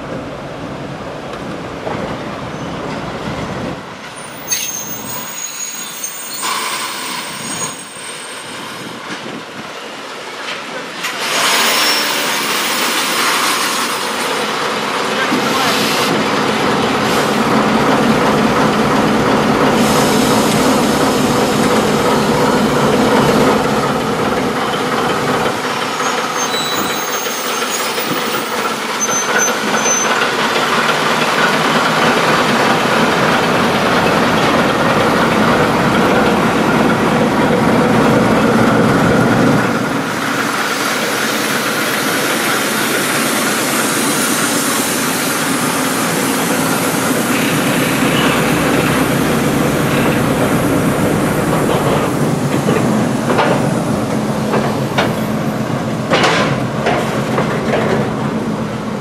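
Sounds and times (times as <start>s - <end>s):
diesel locomotive engine running: 10.8s - 59.0s.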